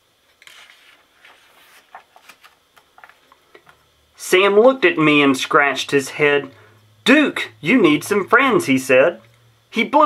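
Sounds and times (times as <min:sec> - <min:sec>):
book page turning: 0:00.3 - 0:03.8.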